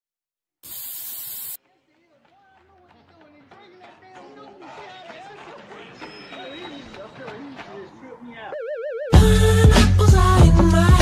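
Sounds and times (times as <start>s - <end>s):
spray paint can hissing: 0.6s - 1.6s.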